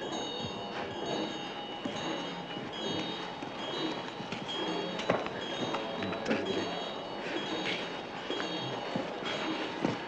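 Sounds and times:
small bells ringing: 0:00.0 - 0:10.0.

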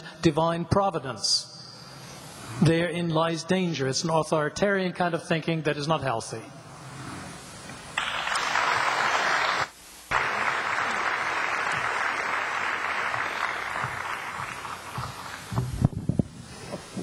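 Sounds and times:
audience applauding: 0:08.0 - 0:15.6.

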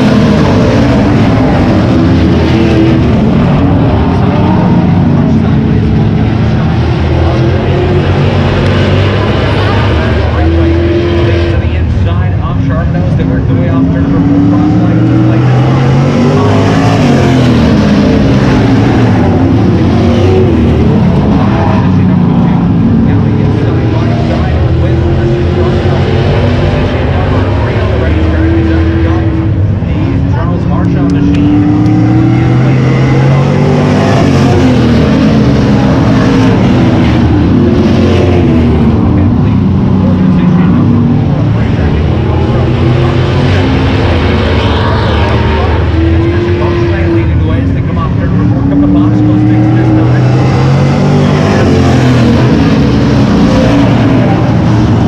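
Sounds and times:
racing car engines: 0:00.0 - 0:55.0.

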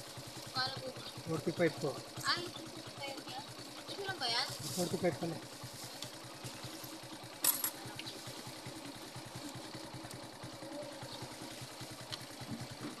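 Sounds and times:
motorcycle engine idling: 0:00.0 - 0:13.0.

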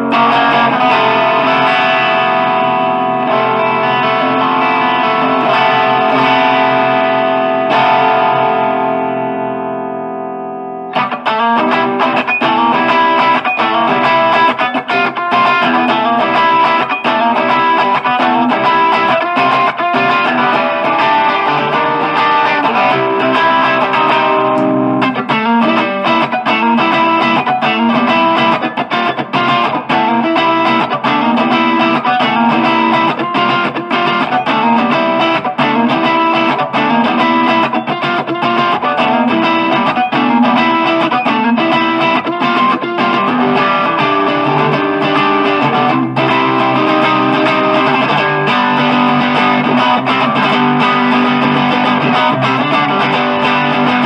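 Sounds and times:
electric guitar playing: 0:00.0 - 0:54.0.

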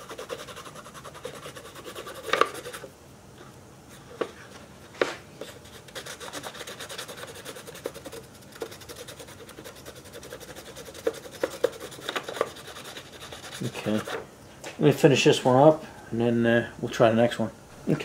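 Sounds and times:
pencil scratching on paper: 0:00.0 - 0:02.8, 0:05.4 - 0:14.2.

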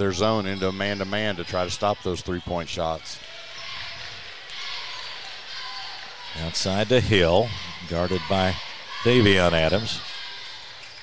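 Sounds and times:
crowd noise hum: 0:00.0 - 0:11.0.

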